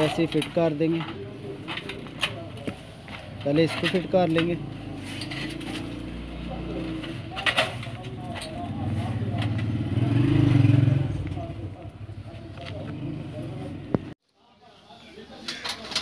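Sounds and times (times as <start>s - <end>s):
vehicle engine passing by: 8.7s - 11.9s.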